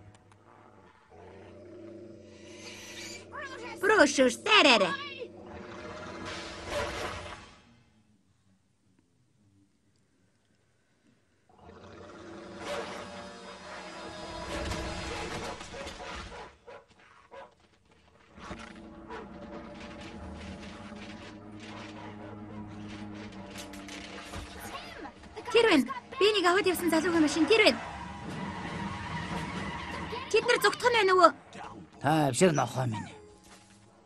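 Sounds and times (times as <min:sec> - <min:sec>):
background music: 0:18.6 - 0:29.3
cartoon car engine speeding away: 0:27.0 - 0:30.3
tyre skid: 0:27.1 - 0:30.3.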